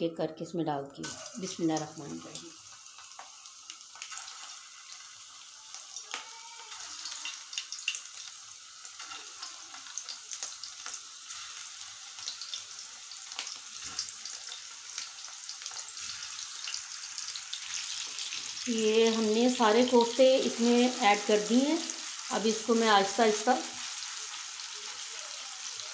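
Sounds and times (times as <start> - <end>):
meatballs sizzling in hot oil: 1.0 - 25.9.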